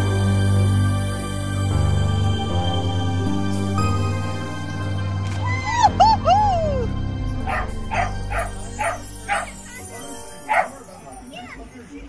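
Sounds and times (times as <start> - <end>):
background music: 0.0 - 12.0
dog barking: 7.4 - 11.0
dog whining: 7.5 - 10.8.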